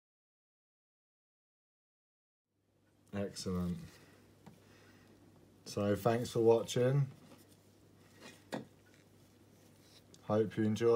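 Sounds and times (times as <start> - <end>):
gloved hands rubbing: 6.0 - 10.4.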